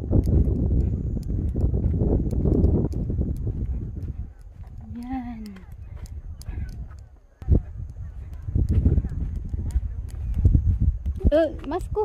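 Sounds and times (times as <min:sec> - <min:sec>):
footsteps on matted footpath: 0:00.0 - 0:12.0
low rumble: 0:00.0 - 0:12.0
indistinct voices talking: 0:03.6 - 0:12.0.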